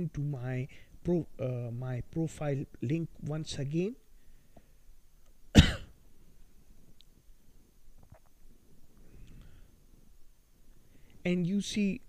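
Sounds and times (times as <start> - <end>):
man coughing: 5.5 - 6.0.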